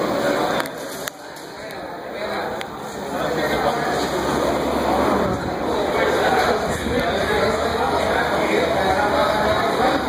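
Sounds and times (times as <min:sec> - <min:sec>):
onlookers talking: 0:00.0 - 0:10.0.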